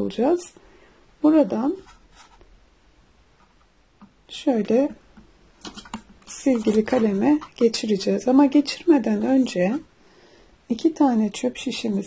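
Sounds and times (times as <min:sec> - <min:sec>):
paper cup and straws rustling: 0:05.6 - 0:07.8.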